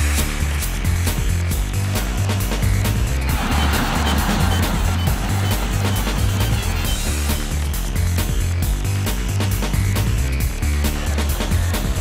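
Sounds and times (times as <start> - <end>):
electronic theme music: 0.1 - 12.0.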